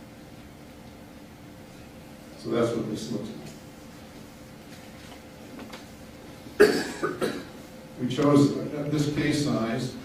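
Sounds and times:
person coughing: 0:06.6 - 0:07.6.

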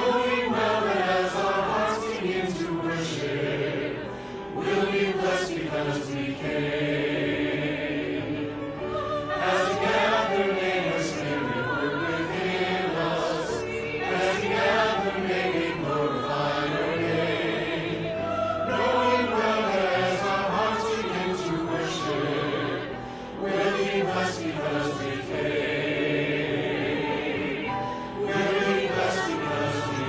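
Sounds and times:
choir of men and women singing: 0:00.0 - 0:30.0.

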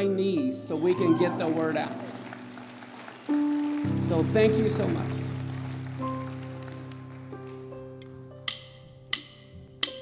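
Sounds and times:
soft keyboard chords: 0:00.0 - 0:10.0.

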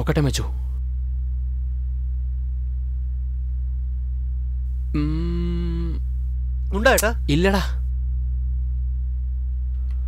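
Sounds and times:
low synthesized drone: 0:00.5 - 0:10.0.

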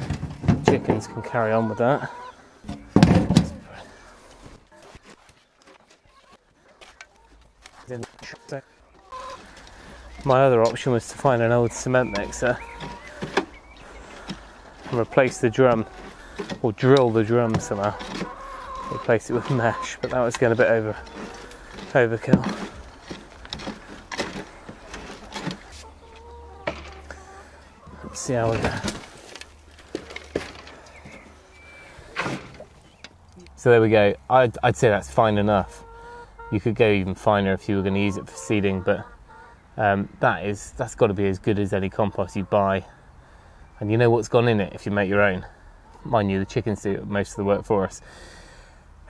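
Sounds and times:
hens clucking: 0:00.0 - 0:49.0
spade scraping soil on wire mesh: 0:14.2 - 0:25.9.

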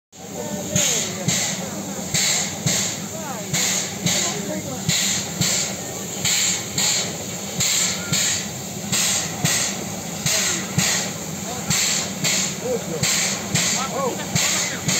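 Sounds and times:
steady steam hiss: 0:00.2 - 0:14.9
steam locomotive puffing: 0:00.2 - 0:14.9.

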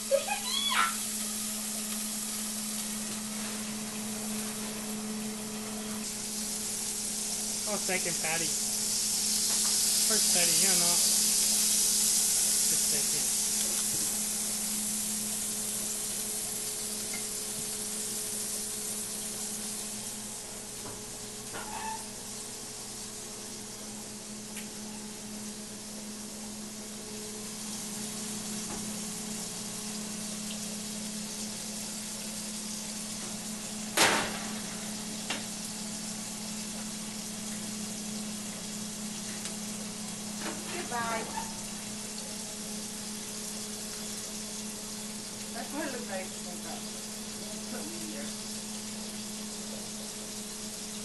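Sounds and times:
meat patty sizzling on griddle: 0:00.0 - 0:51.0.

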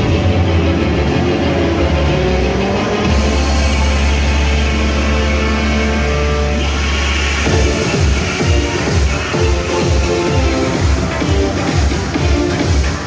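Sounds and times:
heavy sustained bass note: 0:00.0 - 0:07.9
loud music playing: 0:00.0 - 0:13.0.

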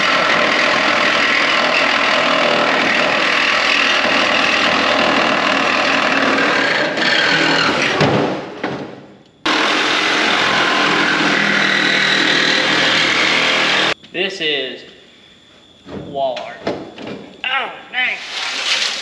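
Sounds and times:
power saw cutting metal: 0:00.0 - 0:08.0, 0:09.5 - 0:14.0.

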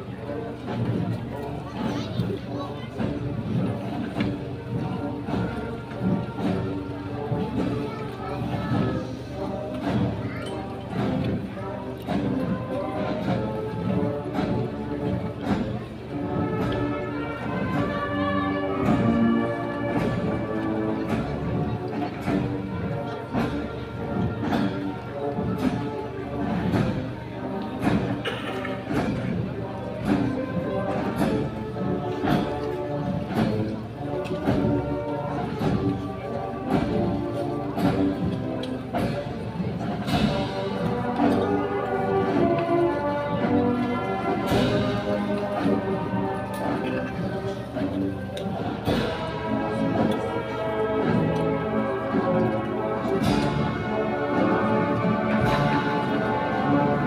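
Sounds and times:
brass chords: 0:00.0 - 0:57.0
steady drum beat: 0:02.9 - 0:57.0.

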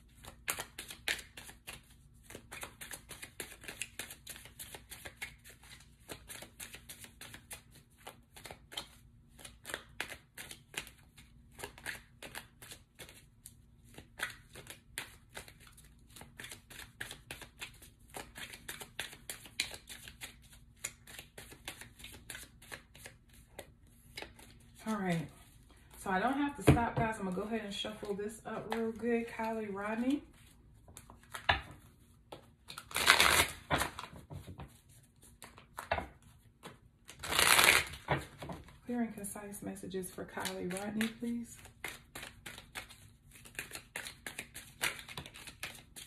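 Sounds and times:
cards shuffled by hand: 0:00.0 - 0:26.0, 0:30.4 - 0:38.8, 0:40.4 - 0:46.0.

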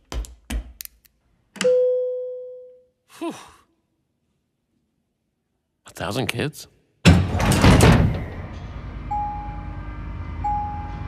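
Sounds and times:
elevator bell chime: 0:01.6 - 0:02.8, 0:09.0 - 0:09.8, 0:10.4 - 0:11.0
person sighing: 0:03.1 - 0:03.9.

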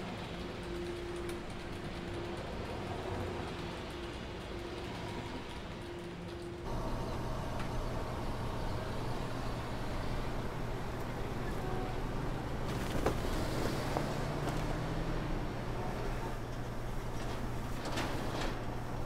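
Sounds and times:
mechanical drone with wavering tone: 0:00.0 - 0:12.9
steady low hum: 0:06.6 - 0:19.0.

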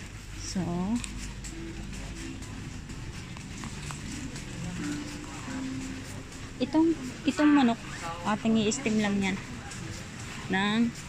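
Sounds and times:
steady background hum: 0:00.0 - 0:11.0
indistinct voices of shoppers: 0:00.1 - 0:11.0.

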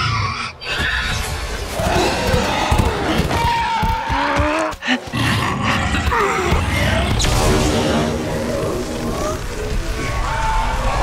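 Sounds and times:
creature roaring and growling: 0:00.0 - 0:11.0
sizzling energy beam blast: 0:07.2 - 0:11.0.

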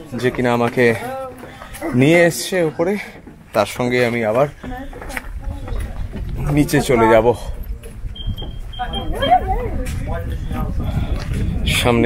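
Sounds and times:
voices: 0:00.0 - 0:12.0
low rumble of movement: 0:04.6 - 0:12.0
wind on microphone: 0:04.6 - 0:12.0.

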